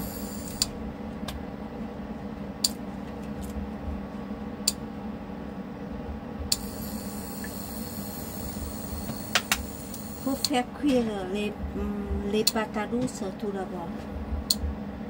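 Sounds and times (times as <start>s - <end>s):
low machine hum: 0.0s - 15.0s.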